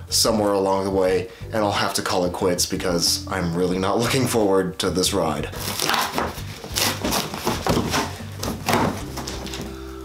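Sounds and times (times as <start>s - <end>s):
background music: 0.0s - 10.0s
cardboard box tearing: 5.6s - 9.7s.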